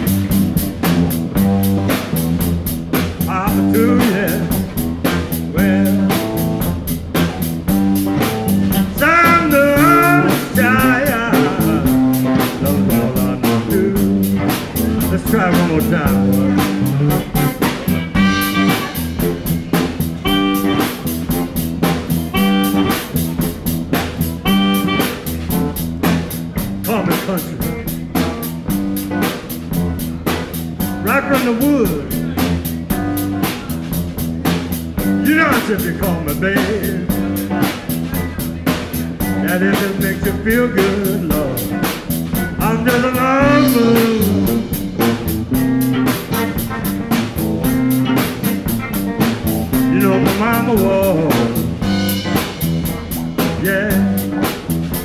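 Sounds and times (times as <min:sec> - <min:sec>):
guitar: 0:00.0 - 0:55.0
live blues band playing: 0:00.0 - 0:55.0.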